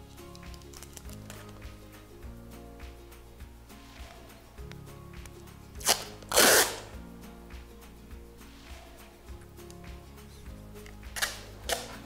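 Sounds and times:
background music: 0.0 - 12.0
packing tape ripping off roll: 5.8 - 7.0, 11.2 - 12.0.

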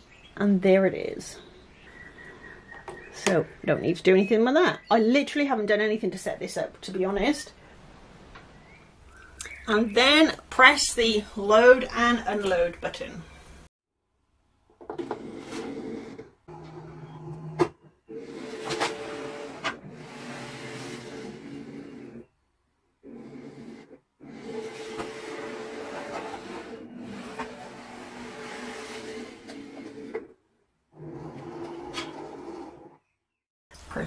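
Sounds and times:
cutting machine motors whirring: 15.0 - 22.2, 23.1 - 30.3.

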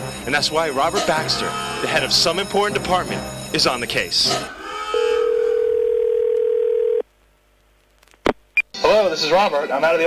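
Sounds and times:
telephone ringback tone: 5.0 - 7.0.

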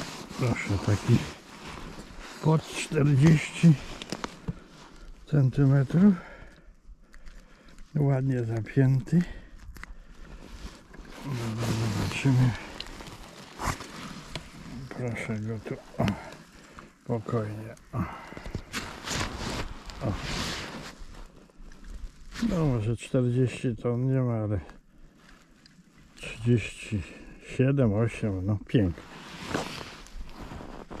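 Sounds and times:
soft crunch on snow: 0.0 - 6.6, 7.2 - 22.9, 28.2 - 31.0
rustling of fish handled: 6.1 - 22.5, 29.1 - 31.0.

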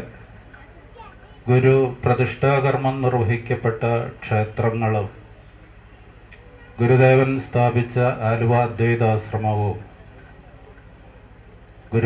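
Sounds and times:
steady low hum: 0.0 - 12.0
man speaking into microphone: 1.5 - 5.1, 6.8 - 9.9.

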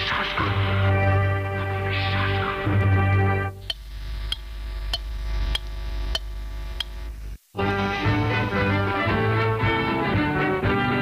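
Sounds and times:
steady low hum: 3.3 - 7.6.

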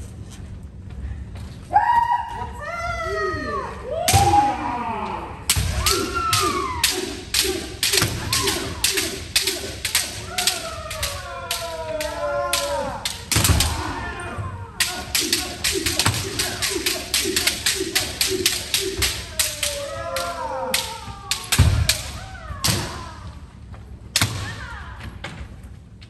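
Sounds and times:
long shouts: 1.7 - 23.4
bamboo swords striking armour: 5.5 - 14.0, 14.8 - 19.2.

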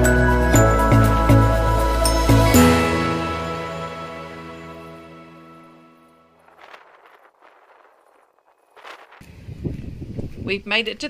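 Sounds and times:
wind rumbling on microphone: 6.4 - 11.0.

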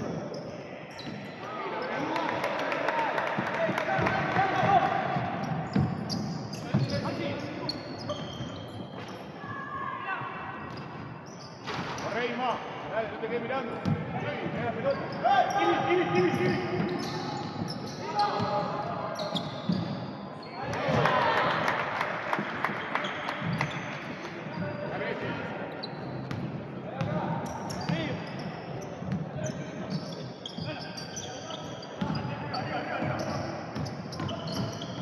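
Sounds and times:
sneakers squeaking: 0.0 - 2.2, 3.9 - 12.9, 13.6 - 21.6, 22.3 - 25.0, 25.6 - 35.0.

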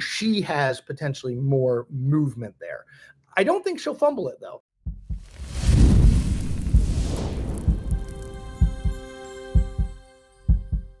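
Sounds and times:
deep heartbeat-like thuds: 4.8 - 9.0, 9.6 - 11.0
deep rumble: 4.9 - 9.0
whoosh: 5.1 - 9.0.

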